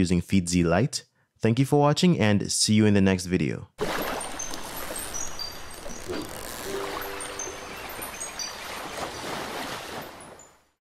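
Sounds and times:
high chiming notes: 4.1s - 9.1s
low tune: 5.8s - 8.4s.

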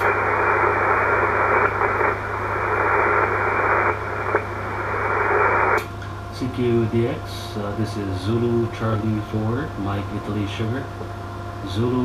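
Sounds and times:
radio receiver static hiss: 0.0s - 7.8s.

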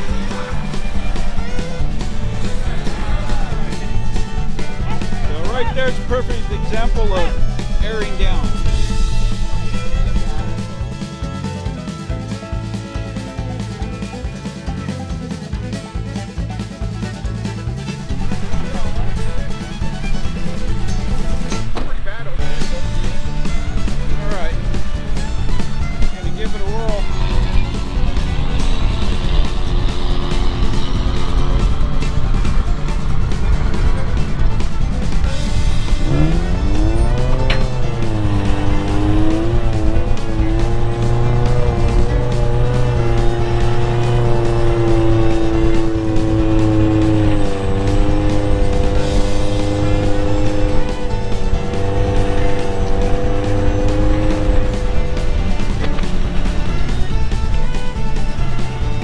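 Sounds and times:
music: 0.0s - 59.0s
vehicle engine revving: 0.0s - 59.0s.

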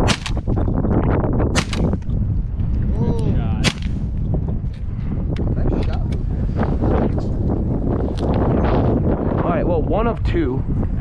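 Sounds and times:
shotgun shots: 0.0s - 0.6s, 1.5s - 2.0s, 3.6s - 4.0s
wind rumble on microphone: 0.0s - 11.0s.

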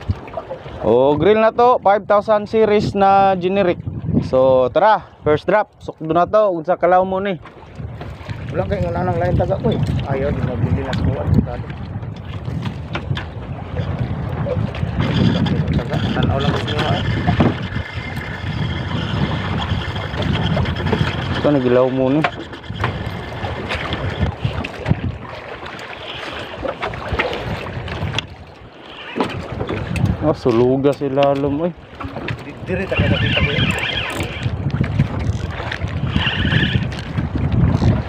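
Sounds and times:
sea waves washing: 0.0s - 1.5s, 7.4s - 38.0s
wind rumbling on microphone: 0.0s - 38.0s.

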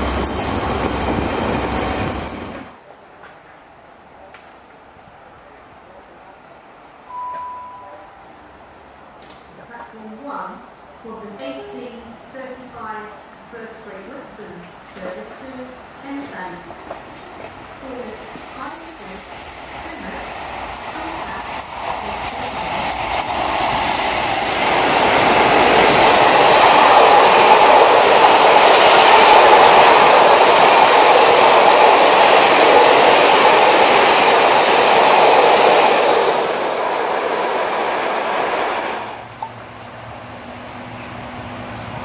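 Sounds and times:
train passing at speed: 0.0s - 2.9s, 10.5s - 42.0s
train wheels rolling on rails: 0.0s - 3.5s, 16.1s - 42.0s.

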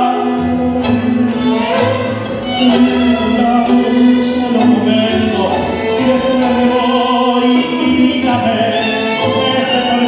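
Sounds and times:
tango orchestra playing: 0.0s - 10.0s
man singing: 2.4s - 10.0s.

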